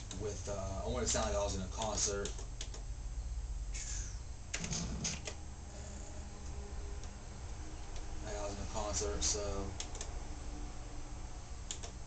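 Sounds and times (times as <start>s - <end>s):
steady low hum: 0.0s - 12.0s
synthesizer buttons clicking: 1.8s - 2.9s, 9.8s - 10.2s, 11.6s - 12.0s.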